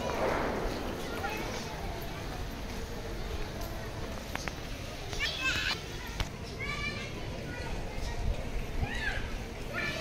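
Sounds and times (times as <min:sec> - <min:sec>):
low street rumble: 0:00.0 - 0:10.0
children calling out: 0:05.1 - 0:10.0.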